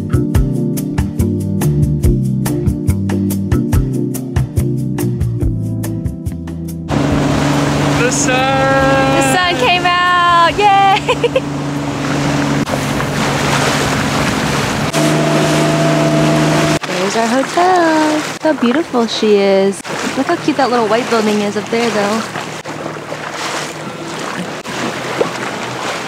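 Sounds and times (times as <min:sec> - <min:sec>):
motorboat engine droning: 0:06.9 - 0:26.0
rush of water and wind: 0:06.9 - 0:26.0
voice in drawn-out tones: 0:08.0 - 0:10.6.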